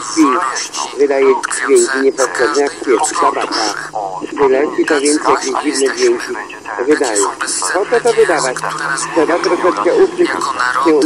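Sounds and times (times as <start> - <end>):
person talking on radio: 0.0 - 11.0.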